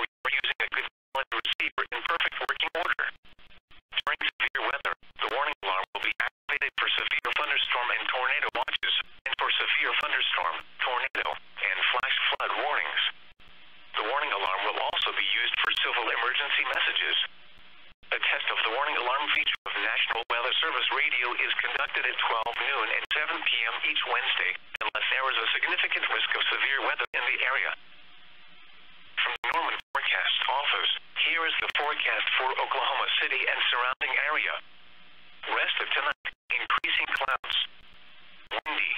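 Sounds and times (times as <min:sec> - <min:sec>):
automated voice over radio: 0:00.0 - 0:03.2, 0:03.9 - 0:13.2, 0:14.0 - 0:17.3, 0:18.1 - 0:27.8, 0:29.2 - 0:34.6, 0:35.4 - 0:37.8, 0:38.5 - 0:38.9.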